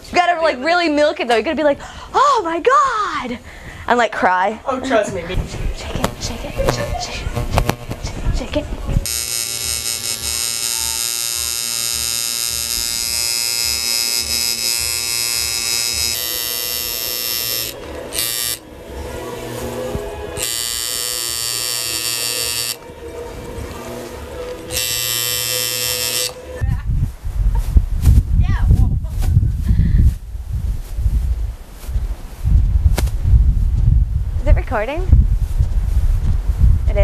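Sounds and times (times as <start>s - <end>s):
tattoo machine buzzing: 6.0s - 8.1s, 9.0s - 18.7s, 20.4s - 22.9s, 24.3s - 26.6s.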